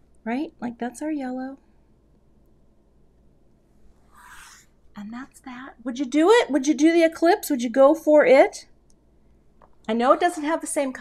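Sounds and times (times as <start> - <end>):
short soft hiss: 3.9 - 4.8.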